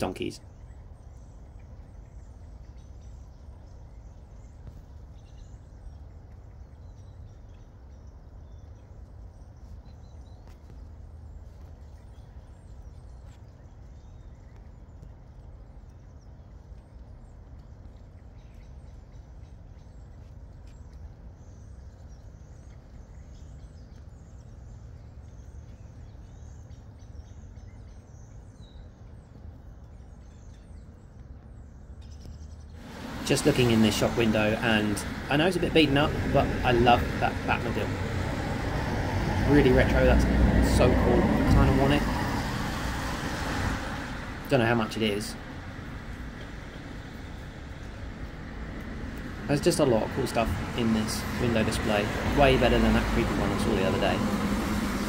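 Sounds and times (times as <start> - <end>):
wind rumble on microphone: 0.0 - 44.6.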